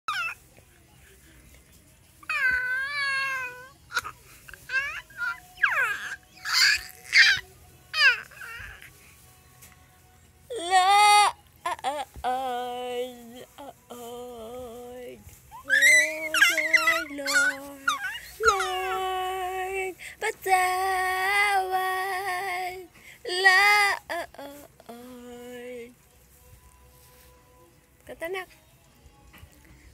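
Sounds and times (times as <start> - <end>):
baby squealing: 0.1 - 0.4, 4.7 - 8.8, 15.5 - 19.0
baby vocalizing: 15.6 - 19.0.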